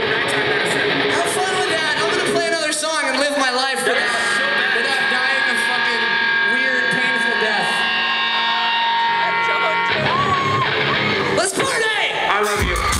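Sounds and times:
crowd shouting and screaming: 0:00.0 - 0:12.9
rock band held chord: 0:00.0 - 0:12.9.

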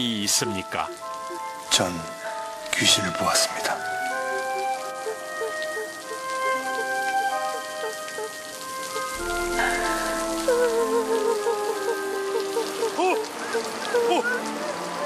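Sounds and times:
steady rain falling: 0:00.0 - 0:15.0
music of long held notes: 0:00.1 - 0:15.0.

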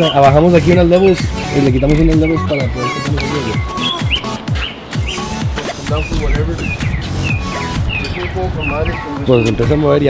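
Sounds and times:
electronic music with steady beat: 0:00.0 - 0:10.0.

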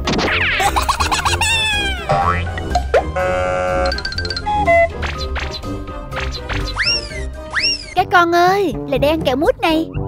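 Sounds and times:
cartoon springy boings: 0:00.0 - 0:05.6
cheerful children's music: 0:00.4 - 0:10.0.

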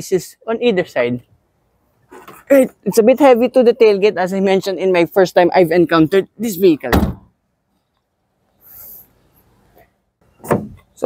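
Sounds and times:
tailgate shutting with thud: 0:06.9 - 0:07.3, 0:10.4 - 0:10.8.

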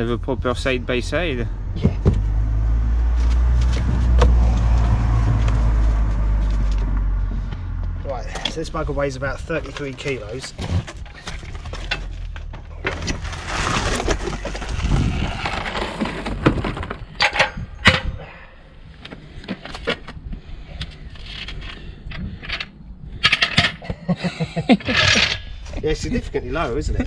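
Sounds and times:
cardboard scraping and rustling: 0:09.4 - 0:17.2.

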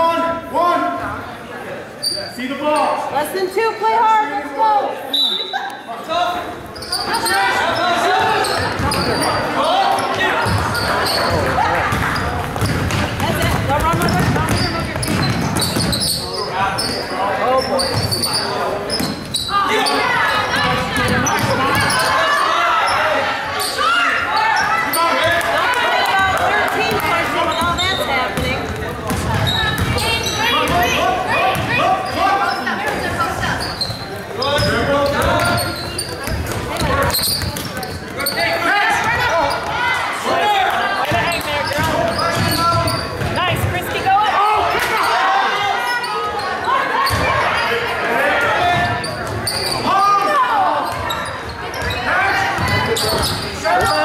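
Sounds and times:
basketball bouncing on hardwood: 0:11.9 - 0:16.0, 0:28.4 - 0:30.0.

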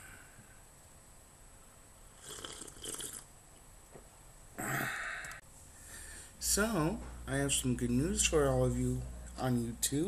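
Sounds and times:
person slurping from mug: 0:02.1 - 0:03.3.

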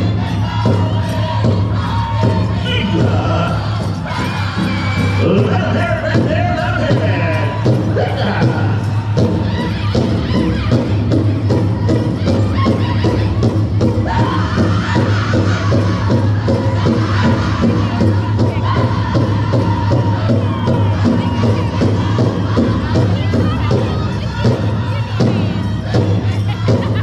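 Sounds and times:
steady drumbeat on large drum: 0:00.0 - 0:27.0.

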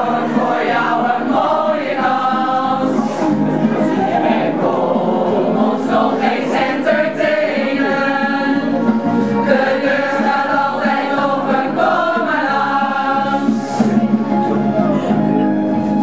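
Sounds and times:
group singing in unison: 0:00.0 - 0:14.2.

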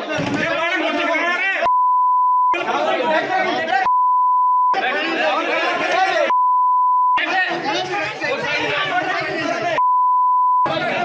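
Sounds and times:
crowd of men talking: 0:00.0 - 0:01.7, 0:02.5 - 0:04.0, 0:04.7 - 0:06.4, 0:07.2 - 0:09.8, 0:10.6 - 0:11.0
censor bleep: 0:01.7 - 0:02.6, 0:03.9 - 0:04.8, 0:06.3 - 0:07.2, 0:09.8 - 0:10.7.

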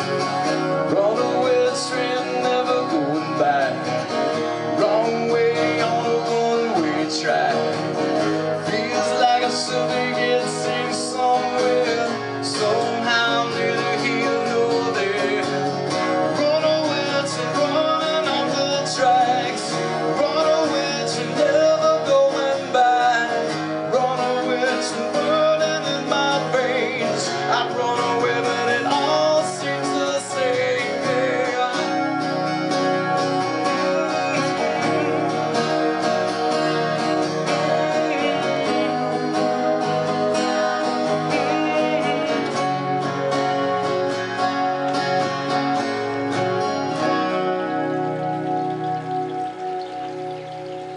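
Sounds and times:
man singing: 0:00.0 - 0:44.4
acoustic guitar strumming: 0:00.0 - 0:50.9.

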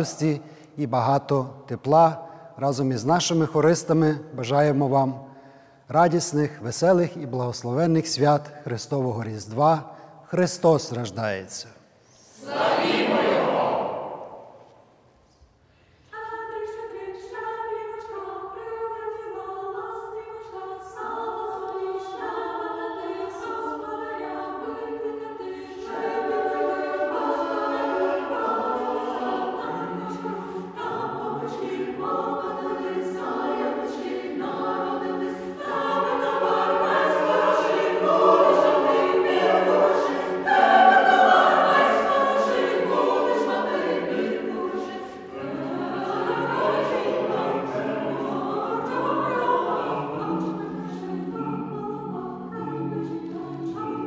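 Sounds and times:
church choir singing carol: 0:00.0 - 0:14.9, 0:16.0 - 0:54.0.

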